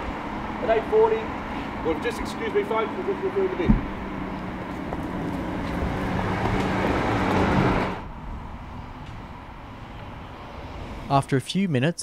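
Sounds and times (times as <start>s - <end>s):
vehicle engine hum: 0.0s - 11.2s
street background: 0.0s - 12.0s.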